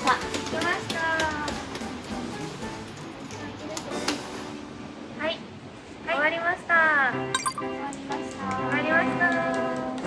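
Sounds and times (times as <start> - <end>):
background music: 7.1 - 10.0
bright clink sound effect: 7.4 - 7.7.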